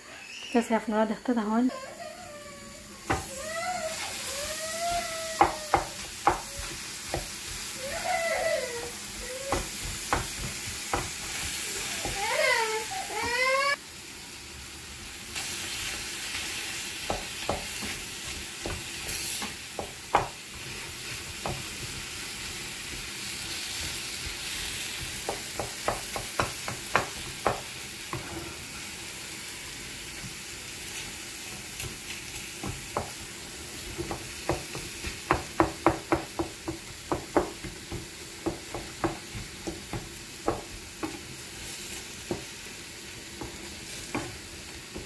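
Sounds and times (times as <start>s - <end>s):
tomatoes sizzling in oil: 0.1s - 45.0s
wooden spatula knocking pan: 9.1s - 12.5s, 33.8s - 41.2s.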